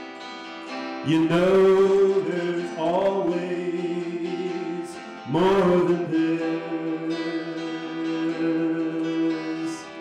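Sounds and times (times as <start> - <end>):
acoustic guitar strummed: 0.0 - 10.0
man singing wordless notes: 0.9 - 10.0.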